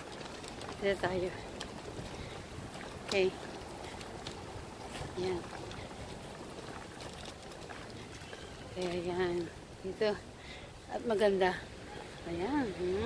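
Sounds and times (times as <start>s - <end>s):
outdoor background rush: 0.0s - 13.0s
person speaking: 4.9s - 5.8s.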